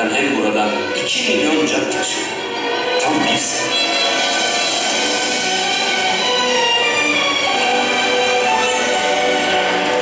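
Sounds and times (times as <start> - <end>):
orchestral string chords: 0.0 - 10.0.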